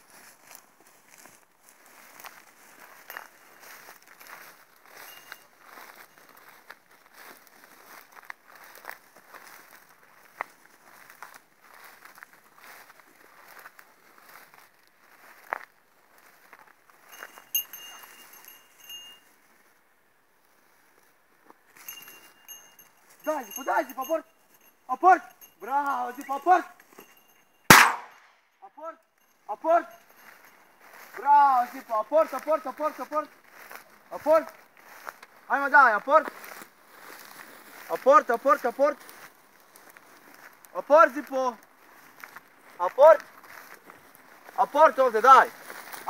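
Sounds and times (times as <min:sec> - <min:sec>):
footsteps through tall grass: 0:00.0 - 0:28.3, 0:29.2 - 0:46.0
faint high ringing tone: 0:04.9 - 0:06.4, 0:17.1 - 0:19.3.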